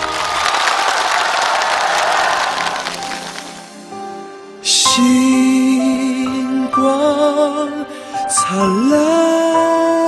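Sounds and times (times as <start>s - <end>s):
audience applauding: 0.0s - 3.9s.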